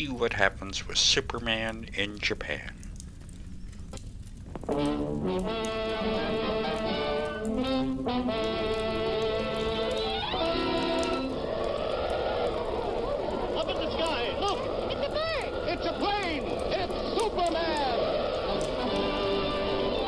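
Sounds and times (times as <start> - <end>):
orchestral brass fanfare: 4.7 - 9.0.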